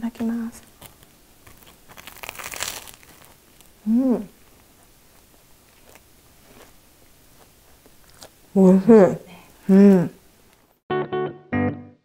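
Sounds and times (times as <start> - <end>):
crunchy bite into toast: 0.8 - 3.8, 4.5 - 8.4.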